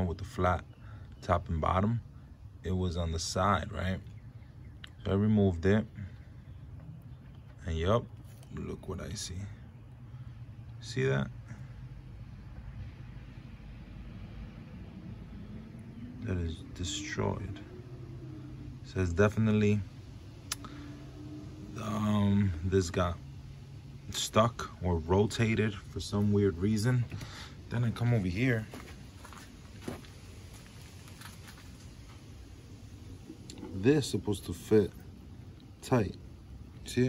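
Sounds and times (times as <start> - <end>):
low rumble and hiss: 0.0 - 37.0.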